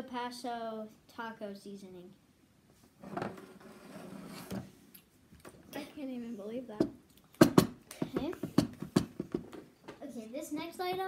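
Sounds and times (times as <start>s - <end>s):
children's voices: 10.0s - 11.0s.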